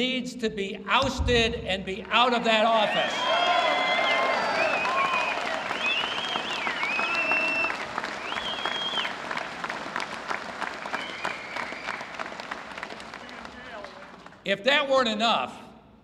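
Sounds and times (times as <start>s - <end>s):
audience applauding: 2.1s - 14.4s.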